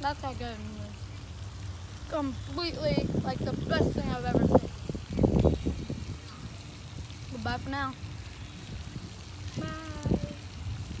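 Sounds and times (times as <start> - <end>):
fountain spraying: 0.0 - 11.0
wind rumbling on microphone: 0.0 - 11.0.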